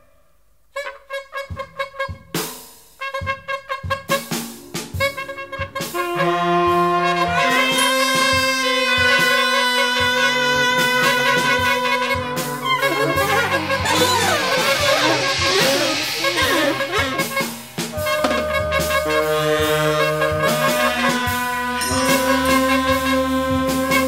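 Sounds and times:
jazz horns playing: 0:00.7 - 0:24.0
drum strokes: 0:02.3 - 0:24.0.

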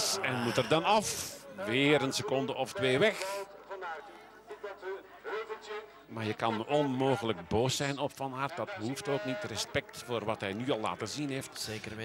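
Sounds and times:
commentators talking: 0:00.0 - 0:07.5.

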